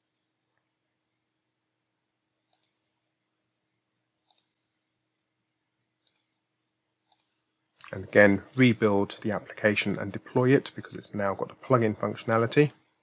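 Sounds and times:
computer mouse clicks: 2.5s - 2.9s, 4.2s - 4.6s, 6.0s - 6.4s, 7.1s - 8.0s.

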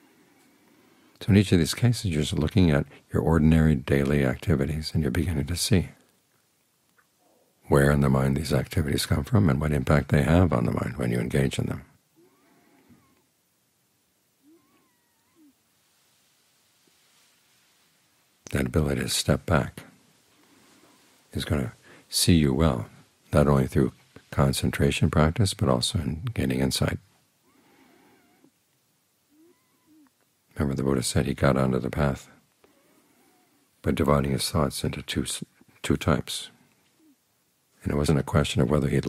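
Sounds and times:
faint animal calls: 12.1s - 13.4s, 14.2s - 15.9s, 27.4s - 30.4s, 32.6s - 33.8s, 36.7s - 37.4s.

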